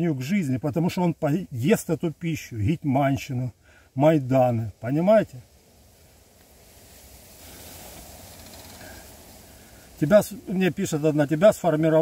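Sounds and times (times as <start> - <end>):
soft rustling hiss: 0.0 - 12.0.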